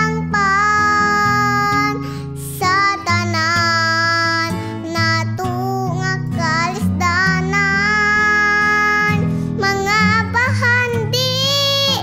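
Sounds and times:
girl singing: 0.0s - 12.0s.

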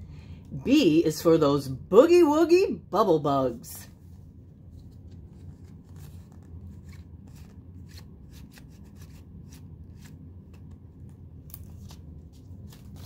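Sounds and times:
low steady hum: 0.0s - 13.0s
page turning: 4.7s - 13.0s
card and paper clicks and rustles: 4.8s - 13.0s.

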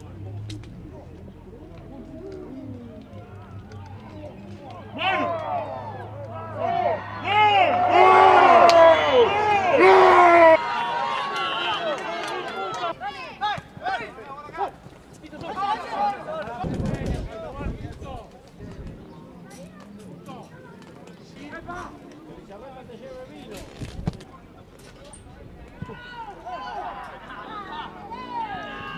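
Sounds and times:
players shouting on pitch: 4.6s - 16.6s, 25.8s - 28.9s
men shouting in celebration: 5.0s - 13.3s.

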